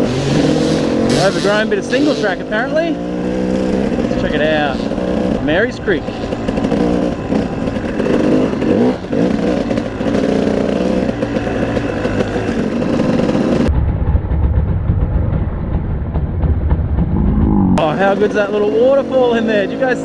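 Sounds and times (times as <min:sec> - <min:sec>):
dirt bike engine revving: 0:00.0 - 0:13.7, 0:16.4 - 0:20.0.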